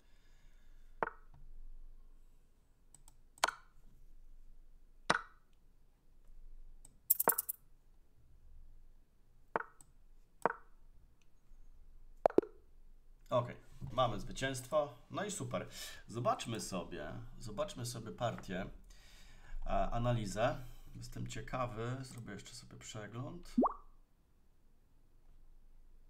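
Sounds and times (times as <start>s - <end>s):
wooden clicks of chess pieces: 3.4s - 3.7s, 10.4s - 10.7s.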